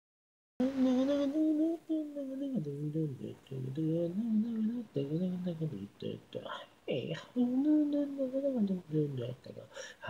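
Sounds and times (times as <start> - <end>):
person humming a melody: 0.6 - 9.8.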